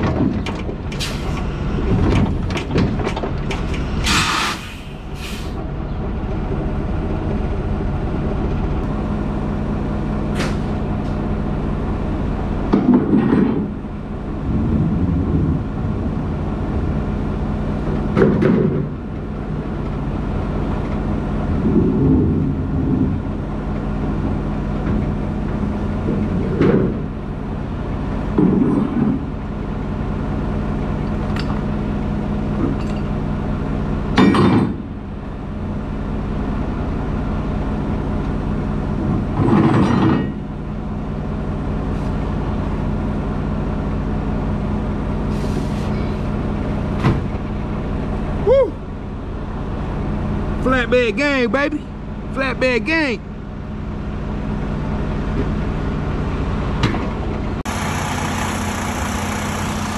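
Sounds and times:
diesel truck engine idling: 0.0 - 12.8, 40.4 - 59.9.

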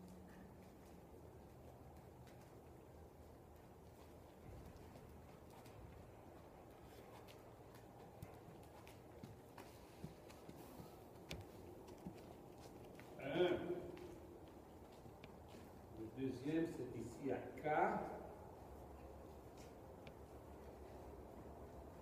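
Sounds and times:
muffled hoofbeats on sand: 0.0 - 17.4.

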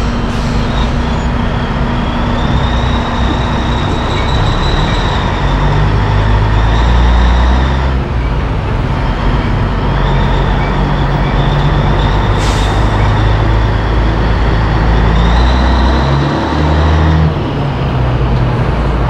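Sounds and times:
diesel engine running at low speed: 0.0 - 19.0.

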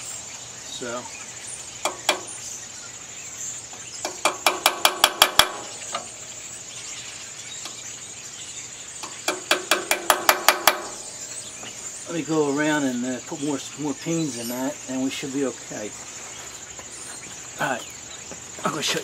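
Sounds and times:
hammer striking metal punch: 4.0 - 6.0, 9.3 - 11.1.

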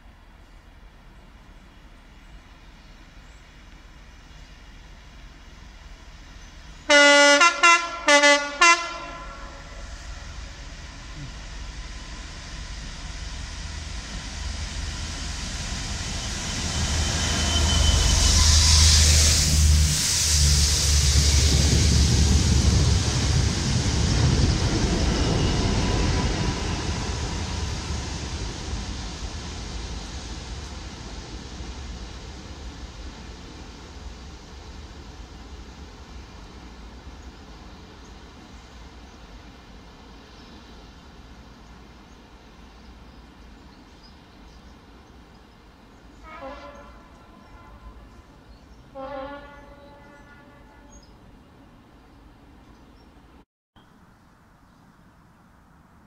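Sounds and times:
locomotive engine rumble: 0.0 - 50.8
train wheel noise: 0.6 - 49.5
train horn short blasts: 6.9 - 9.9, 46.2 - 51.2.

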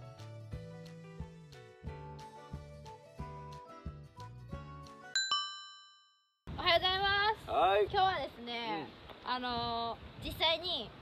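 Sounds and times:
light background music: 0.0 - 5.2
bell-like chime dings: 5.2 - 6.4.

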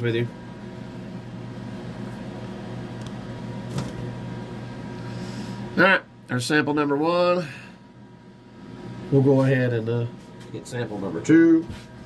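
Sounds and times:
electrical hum of equipment: 0.0 - 12.0.

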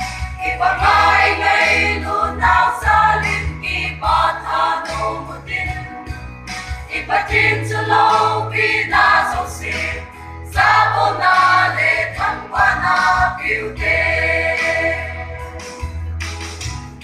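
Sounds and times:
choir singing a gospel hymn: 0.0 - 15.9.

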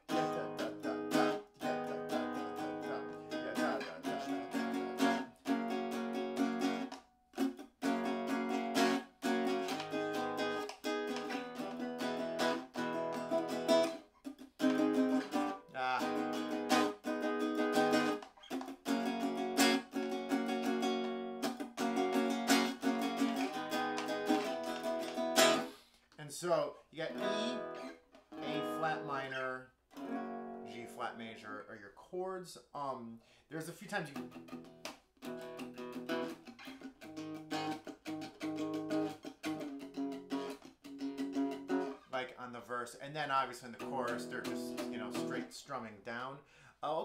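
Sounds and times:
nylon-string guitar strumming: 0.0 - 25.8, 27.0 - 31.2, 34.0 - 42.3, 43.6 - 45.6.

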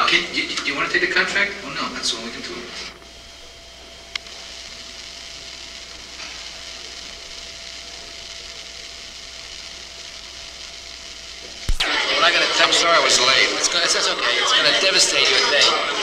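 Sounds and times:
tape hiss: 0.0 - 16.0.

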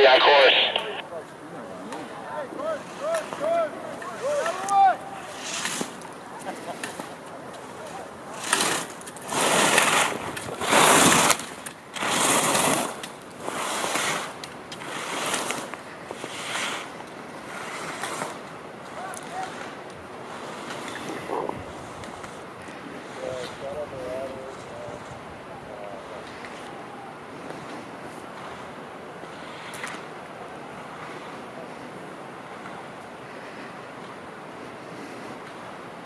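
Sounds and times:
skis scraping on snow: 2.6 - 25.1, 27.4 - 32.6.

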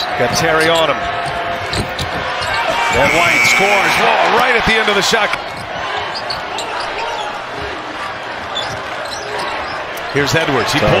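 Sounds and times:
crowd din: 0.0 - 11.0.

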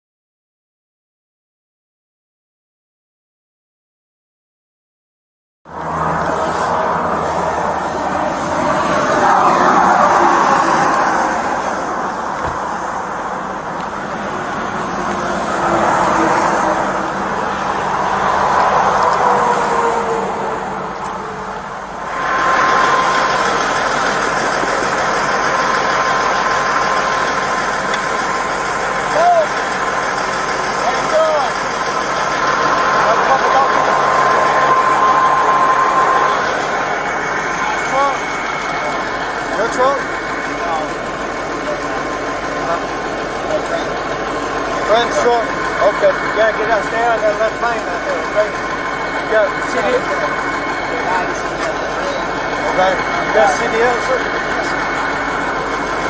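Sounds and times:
passing traffic: 5.7 - 56.0
truck engine: 5.7 - 56.0
indistinct voices: 5.8 - 56.0
steady high hum: 20.6 - 56.0.

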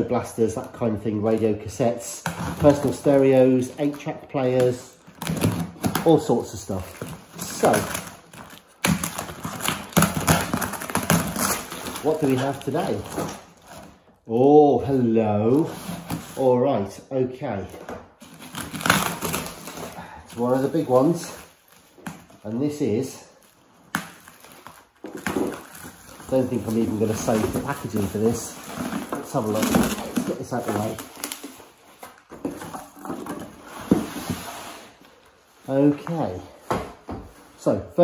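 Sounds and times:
bubble wrap crinkling: 0.2 - 14.0, 18.1 - 36.4
packing tape and cardboard tearing: 0.4 - 14.0, 15.4 - 16.4, 18.2 - 35.3.

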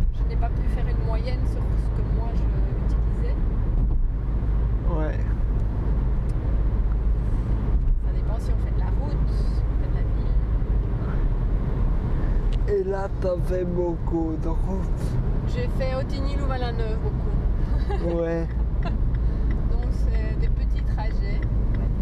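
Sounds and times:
car engine and road rumble: 0.0 - 22.0.

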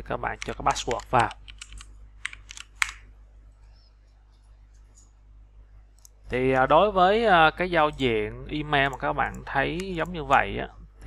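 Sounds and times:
computer keyboard key presses: 0.4 - 3.0.

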